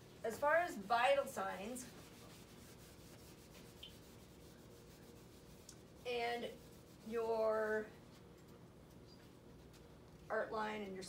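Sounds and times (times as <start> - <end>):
eraser rubbing on whiteboard: 1.6 - 7.4.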